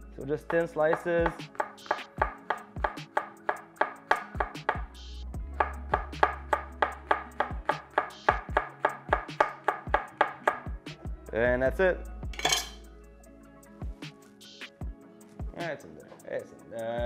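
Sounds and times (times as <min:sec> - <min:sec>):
background music: 0:00.0 - 0:17.0.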